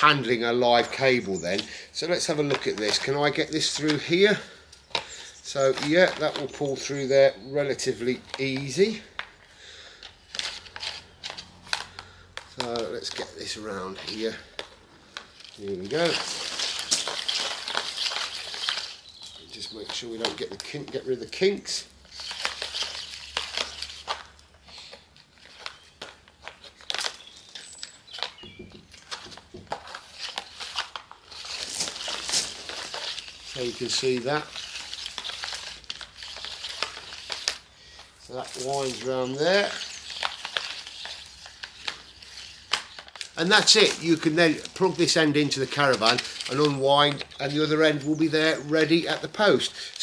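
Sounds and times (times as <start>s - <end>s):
plastic clicks and rustles: 0.8s - 7.1s, 7.7s - 50.0s.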